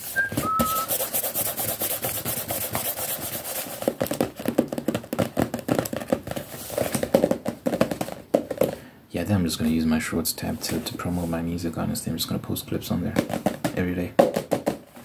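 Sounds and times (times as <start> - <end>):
high squeak: 0.0 - 0.9
rough rubbing and scratching: 0.0 - 3.9.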